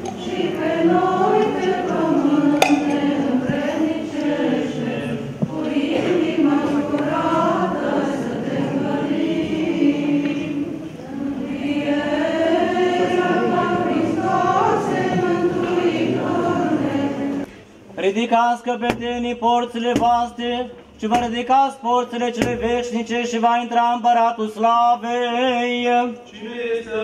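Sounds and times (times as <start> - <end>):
choir and congregation chanting: 0.0 - 17.6.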